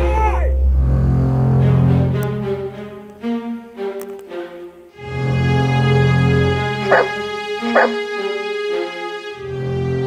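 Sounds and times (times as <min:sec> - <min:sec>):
background music: 0:00.0 - 0:10.0
dog barks: 0:06.9 - 0:08.0.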